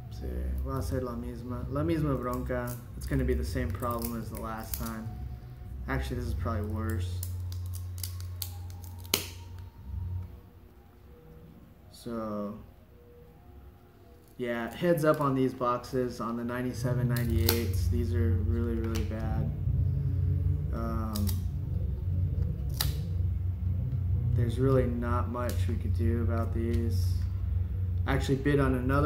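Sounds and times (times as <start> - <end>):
steady low hum: 0.0 - 29.0
trading cards being handled: 1.8 - 5.2, 6.2 - 9.7, 14.2 - 15.7, 17.0 - 19.5
trading cards pried apart: 6.9 - 9.4, 17.1 - 17.8.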